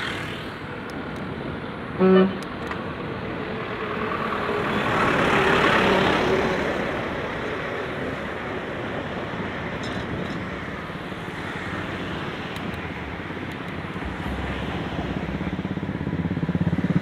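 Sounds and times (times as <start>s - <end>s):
bus passing: 0.0s - 17.0s
road traffic noise: 0.0s - 17.0s.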